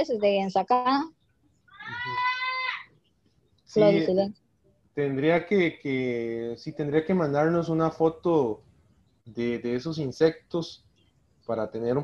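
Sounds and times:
animal drawn-out high cry: 1.7s - 2.9s.

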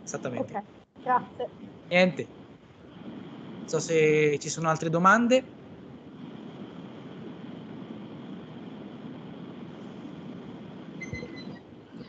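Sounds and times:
microphone hiss and rumble: 0.0s - 12.0s.

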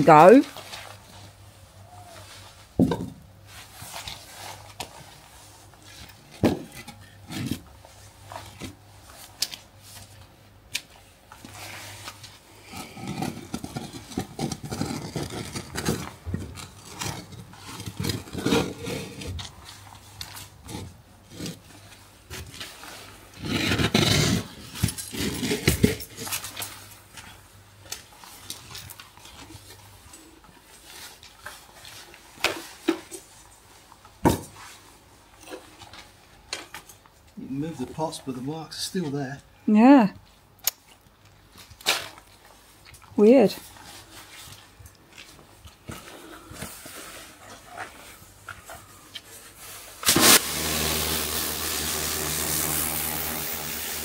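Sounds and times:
plant pots knocking on stone: 2.8s - 3.2s
pots grinding on stone slabs: 12.6s - 19.6s, 23.3s - 26.4s.

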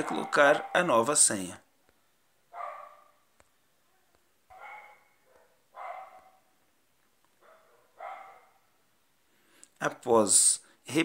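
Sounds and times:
dog barking faintly: 0.0s - 1.1s, 2.5s - 6.6s, 7.4s - 8.8s.

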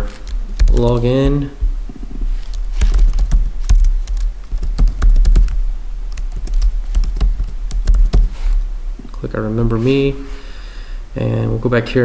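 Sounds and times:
steady low hum: 0.0s - 12.0s
computer keyboard typing: 0.1s - 1.4s, 2.4s - 8.4s.

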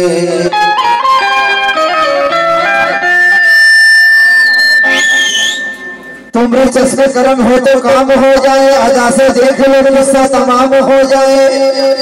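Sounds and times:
qawwali music with harmonium: 0.0s - 10.2s
wavering higher note: 1.2s - 6.4s
high whistle-like tone: 3.0s - 6.4s.

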